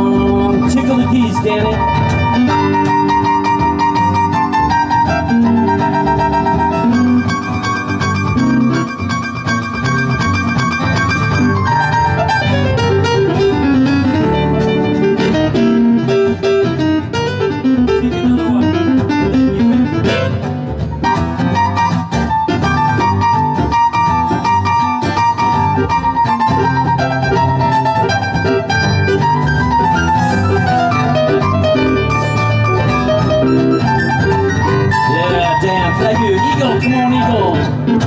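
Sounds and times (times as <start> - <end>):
acoustic guitar: 0.0 - 38.0
keyboard: 0.0 - 38.0
upright bass: 0.0 - 38.0.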